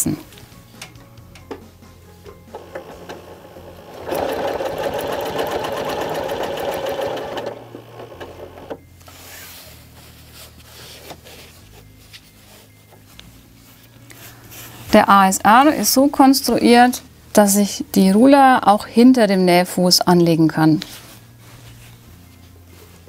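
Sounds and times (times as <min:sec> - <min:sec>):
sewing machine stitching: 0:02.4 - 0:08.8.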